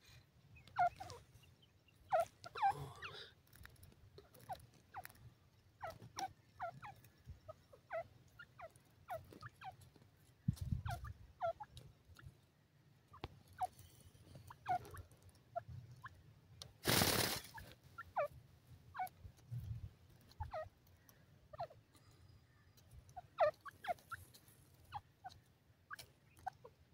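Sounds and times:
bird chirping: 0:00.0 - 0:12.4, 0:13.0 - 0:16.2, 0:17.0 - 0:26.9.

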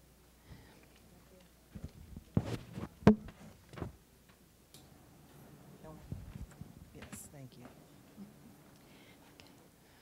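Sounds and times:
sharp knock: 0:03.1 - 0:03.3.

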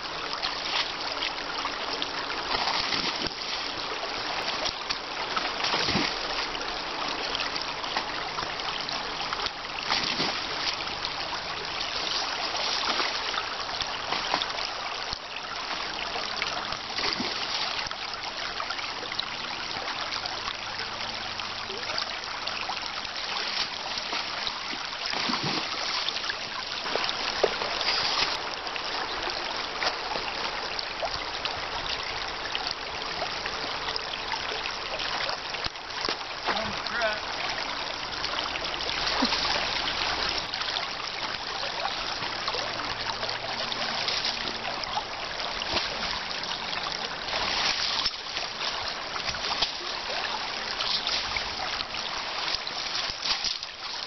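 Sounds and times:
creek water trickling: 0:00.0 - 0:54.0.

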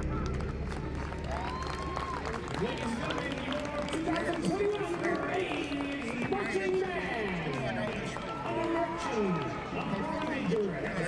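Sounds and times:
stadium crowd talking: 0:00.0 - 0:11.0.

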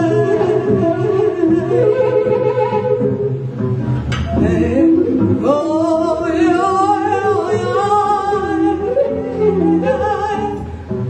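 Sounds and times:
double bass: 0:00.0 - 0:11.0
saxophones holding bending tones: 0:00.0 - 0:11.0.

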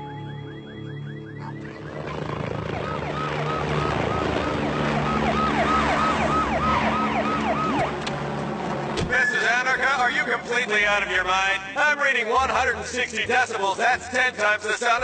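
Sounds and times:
police siren: 0:00.0 - 0:11.2
man speaking through megaphone: 0:09.1 - 0:13.0.

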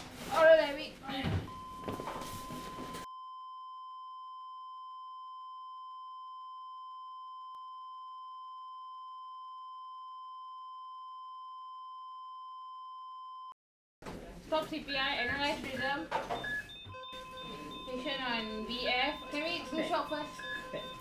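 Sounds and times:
high-pitched electronic beep: 0:16.4 - 0:21.0.

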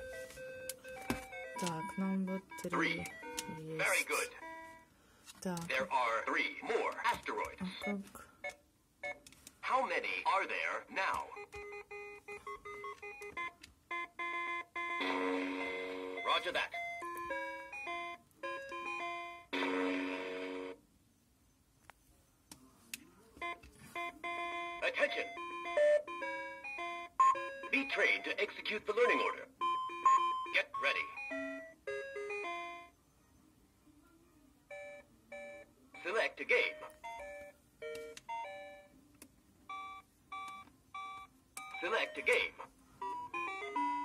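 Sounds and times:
toy laptop electronic beeping jingle: 0:00.0 - 0:04.7, 0:11.0 - 0:20.8, 0:23.4 - 0:33.0, 0:39.7 - 0:44.0
toy electronic voice: 0:09.6 - 0:11.5, 0:41.8 - 0:42.7.

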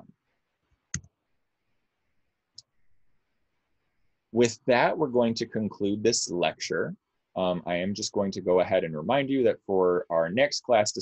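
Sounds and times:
computer mouse click: 0:00.9 - 0:01.1.

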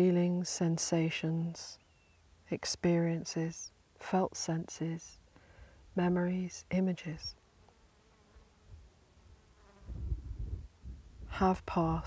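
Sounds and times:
flying insect buzzing: 0:07.3 - 0:10.8.

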